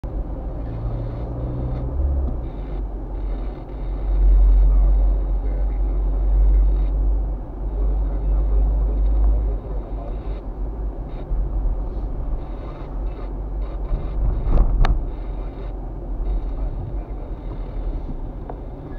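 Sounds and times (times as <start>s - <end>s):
car engine and tyre rumble: 0.0s - 18.9s.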